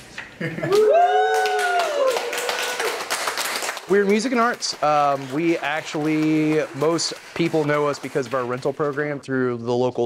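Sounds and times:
group cheering woo: 0:00.6 - 0:03.2
people clapping: 0:00.6 - 0:09.2.

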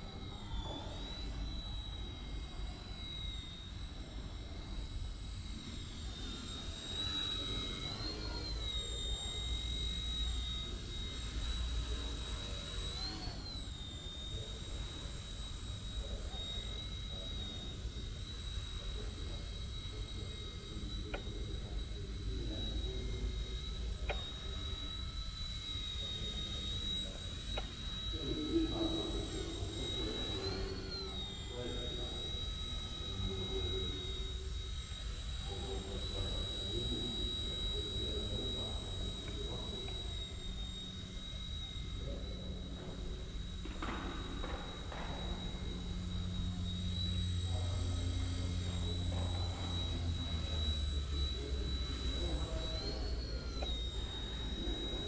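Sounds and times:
toy helicopter motor whine: 0:00.0 - 0:55.0.

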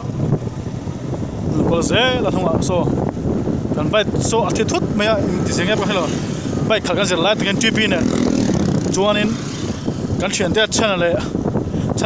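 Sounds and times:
motorcycles running: 0:00.0 - 0:12.0
road noise: 0:00.0 - 0:12.0.

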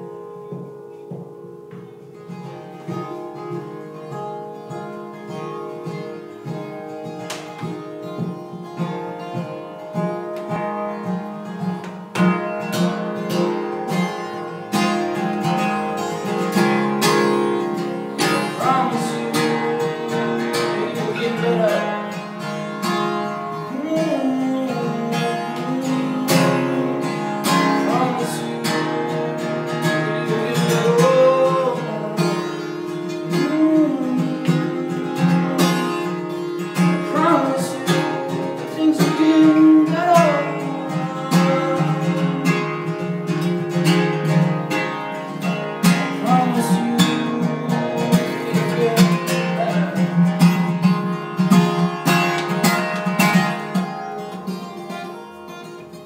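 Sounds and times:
acoustic guitar strummed: 0:00.0 - 0:56.0
sliding melody line: 0:12.4 - 0:43.7.

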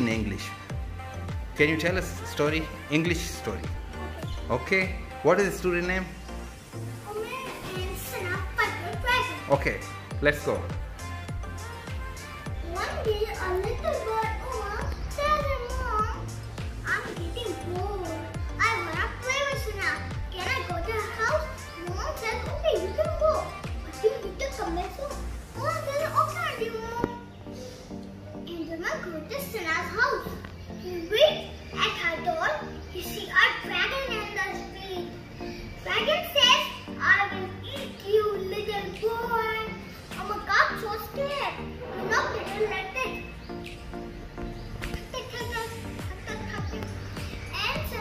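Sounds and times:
background music with low beat: 0:00.0 - 0:26.4, 0:41.2 - 0:48.0
boy talking: 0:01.6 - 0:06.0, 0:07.0 - 0:10.8, 0:12.2 - 0:27.7, 0:28.4 - 0:35.2, 0:35.8 - 0:43.4, 0:45.0 - 0:48.0
steady background tone: 0:34.3 - 0:48.0.

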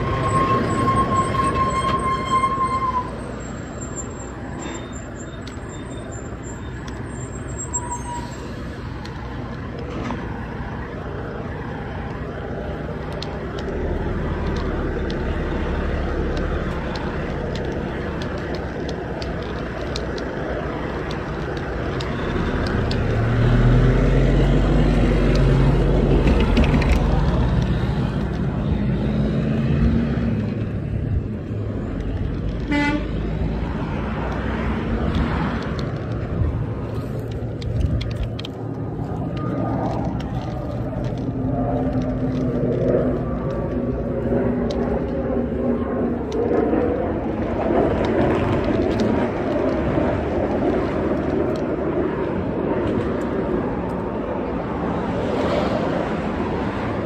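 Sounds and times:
road traffic: 0:00.0 - 0:57.0
truck diesel engine passing: 0:20.7 - 0:32.0
car horn toot: 0:32.7 - 0:33.1.

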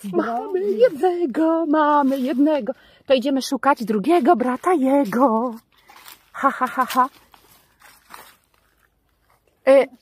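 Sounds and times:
faint rustle: 0:04.5 - 0:09.8.

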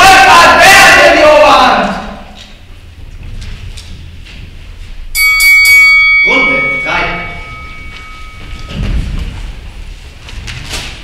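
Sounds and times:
bell ringing: 0:05.2 - 0:09.0.

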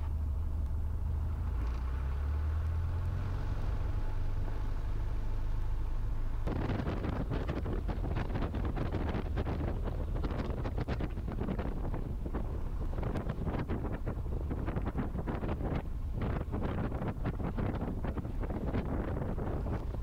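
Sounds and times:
wind on microphone: 0:06.4 - 0:20.0.

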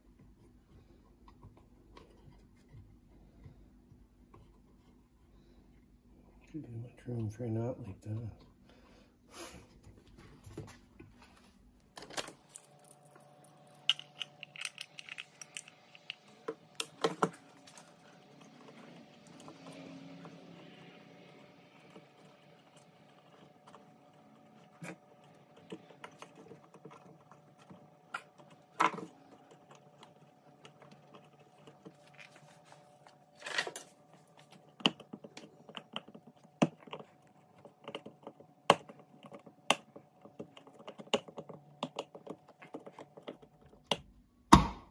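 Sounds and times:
faint steady hum: 0:00.0 - 0:44.9.

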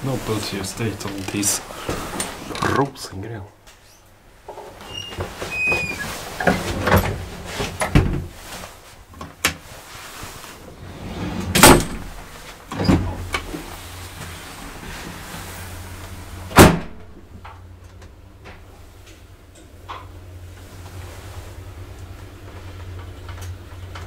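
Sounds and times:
elevator low hum: 0:09.6 - 0:24.0.

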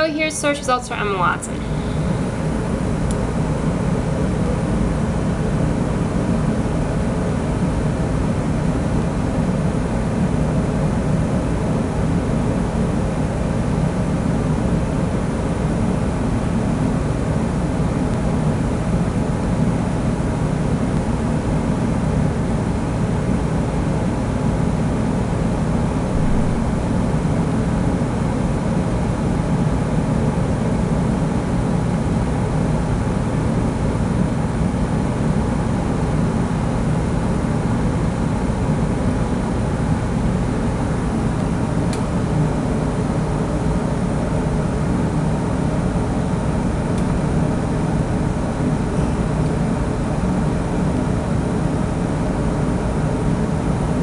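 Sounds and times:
steady low rumbling: 0:25.7 - 0:28.8.

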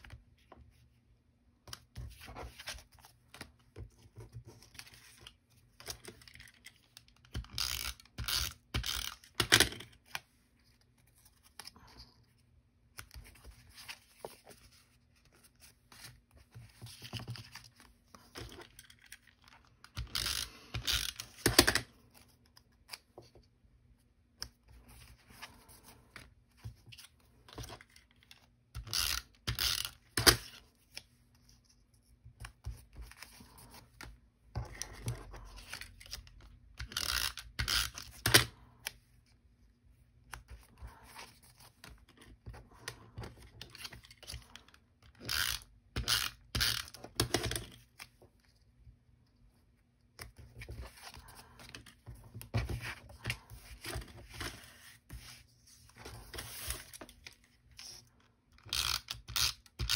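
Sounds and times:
paper and card handling: 0:01.6 - 0:59.9.

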